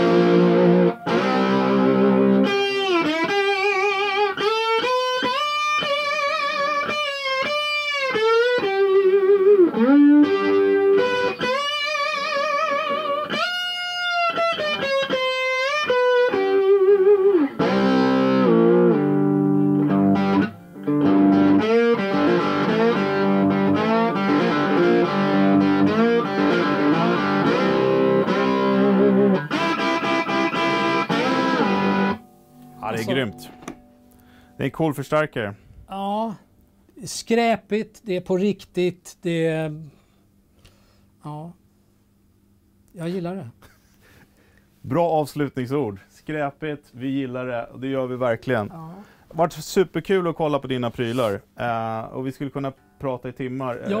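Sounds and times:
lap steel guitar sliding melody: 0.0 - 34.6.

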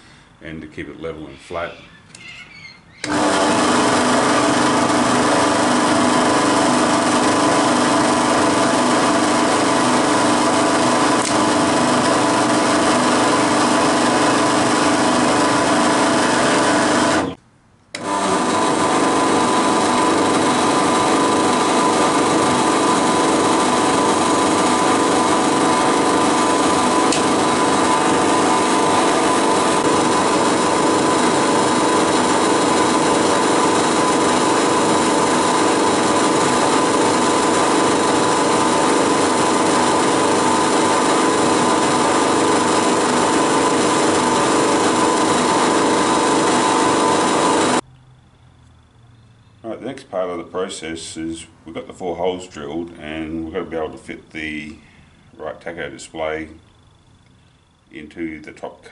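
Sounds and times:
drill press drilling plastic: 3.0 - 47.8.

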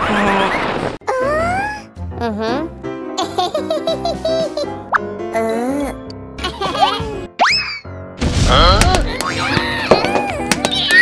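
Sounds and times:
playful children's music: 1.0 - 11.0.

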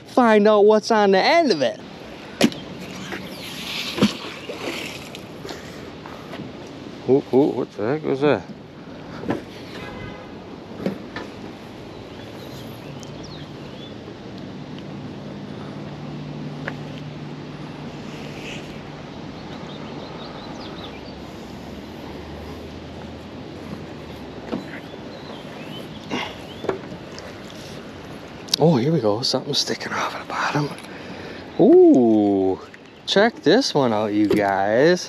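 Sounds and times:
low engine-like hum: 11.0 - 28.6.

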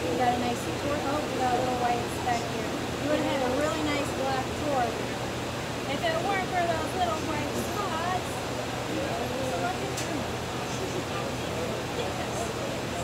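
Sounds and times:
indistinct chatter of voices: 0.0 - 13.0
steady low hum: 0.0 - 13.0.

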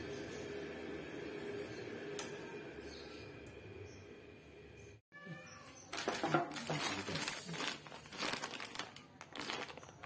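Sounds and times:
plastic bag crinkling: 5.9 - 10.0.

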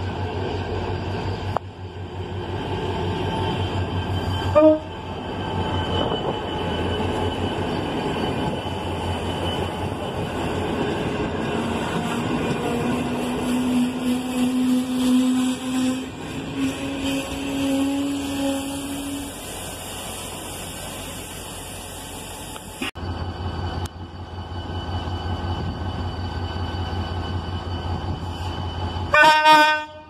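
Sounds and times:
coaches rolling on rails: 0.0 - 19.8
diesel locomotive rumbling: 0.0 - 30.0
train horn blast: 4.5 - 5.0, 12.7 - 19.4, 29.1 - 30.0.

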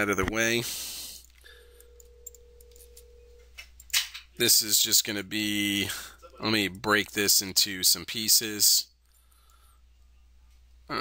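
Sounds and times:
faint steady tone: 0.7 - 4.0.

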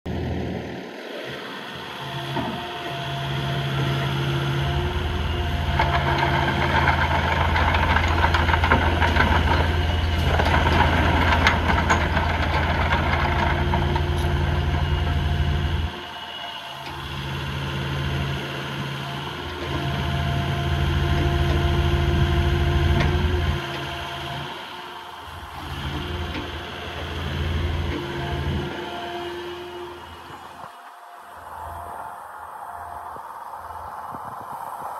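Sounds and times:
excavator diesel engine running: 0.1 - 34.0.

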